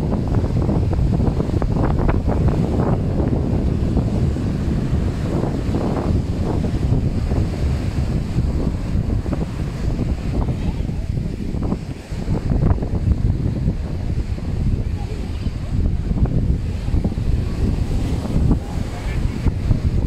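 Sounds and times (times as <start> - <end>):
small waves breaking on shore: 0.0 - 20.0
wind buffeting microphone: 0.0 - 20.0.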